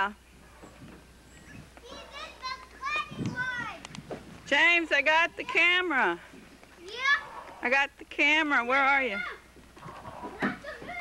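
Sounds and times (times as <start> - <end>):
children calling and chattering: 0.6 - 7.7, 8.8 - 11.0.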